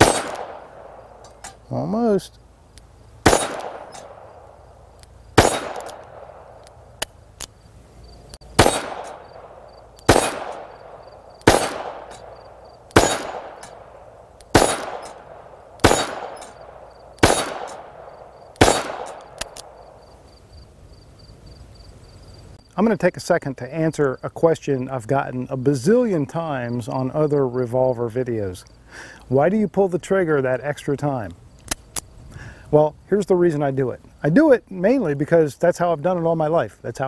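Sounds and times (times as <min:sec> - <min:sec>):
revolver gunshots with echo: 0:00.0 - 0:01.2, 0:03.2 - 0:04.7, 0:05.4 - 0:06.6, 0:08.5 - 0:20.0
bullets pinging steel target: 0:00.0 - 0:01.6, 0:03.2 - 0:04.5, 0:05.4 - 0:06.7, 0:08.6 - 0:19.8.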